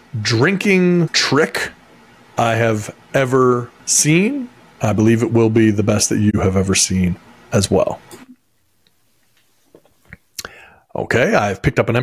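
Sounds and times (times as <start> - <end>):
breath hiss: 10.4 - 10.9.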